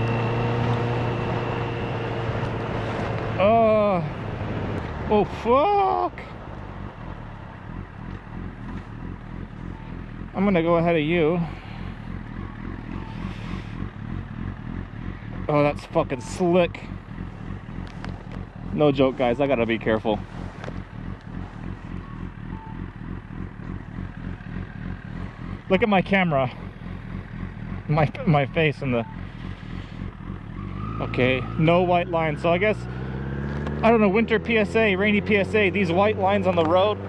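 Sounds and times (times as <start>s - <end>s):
motorcycle engine running: 0.0s - 37.0s
wind and road noise: 0.0s - 37.0s.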